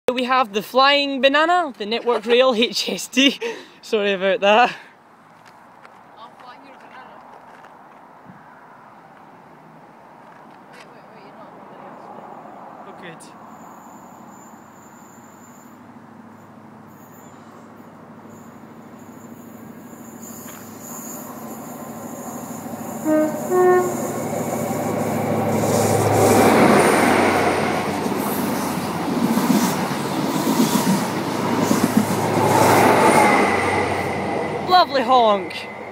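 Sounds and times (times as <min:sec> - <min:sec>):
wheels on rail: 0:12.2 - 0:35.9
diesel train engine: 0:13.3 - 0:35.9
train two-tone horn: 0:22.4 - 0:24.7.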